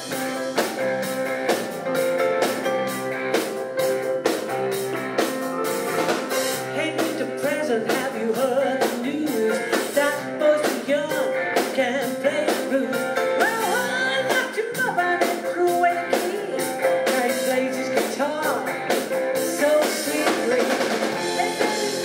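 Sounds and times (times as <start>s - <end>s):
blues-rock band playing: 0.0s - 22.0s
woman singing: 6.7s - 18.8s, 19.4s - 22.0s.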